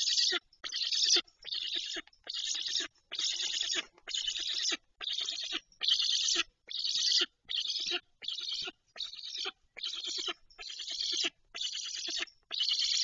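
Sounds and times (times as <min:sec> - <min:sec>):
stork chick rasping calls: 0:00.0 - 0:13.0.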